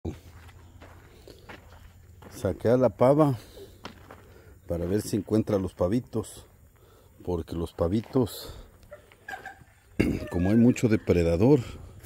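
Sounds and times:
soft footsteps on ground: 0.0 - 12.0.

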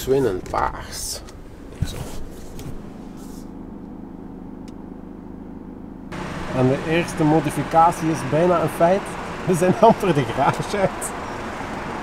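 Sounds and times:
car engine and road hum: 0.0 - 12.0.

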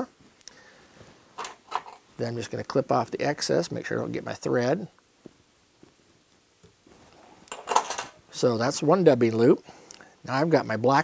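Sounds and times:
small metal clinks: 7.5 - 8.2.

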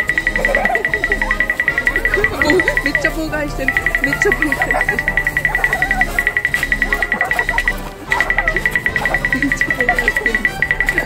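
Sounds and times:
background music: 0.0 - 11.0
fast high-pitched beeping: 0.0 - 11.0.

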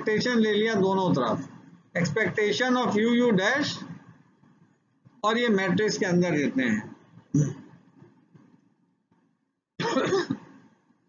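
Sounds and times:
man clearing his throat: 7.4 - 7.7, 9.8 - 10.6.

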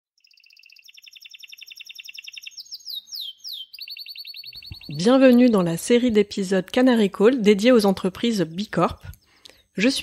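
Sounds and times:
canary trilling: 0.2 - 5.6.

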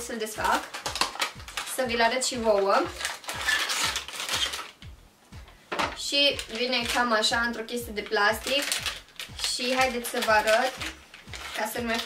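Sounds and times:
plastic packaging crinkling: 0.0 - 4.8, 6.2 - 12.0.

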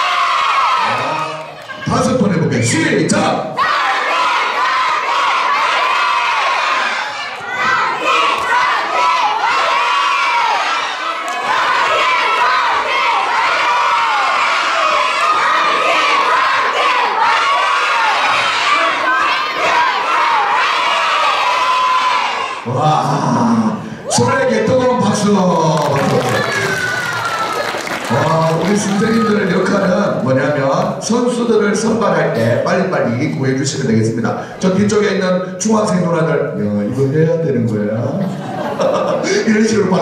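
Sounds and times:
children shouting and cheering: 0.0 - 2.0, 3.6 - 22.8, 25.6 - 30.0.

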